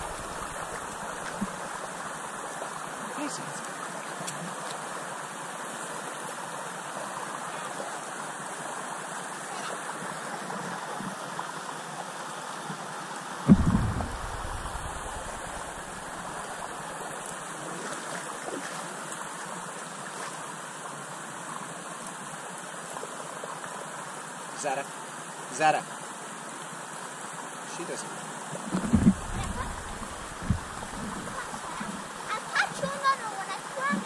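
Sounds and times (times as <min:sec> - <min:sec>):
flowing river water: 0:00.0 - 0:34.0
sudden low thump: 0:13.5 - 0:16.3, 0:28.8 - 0:31.4.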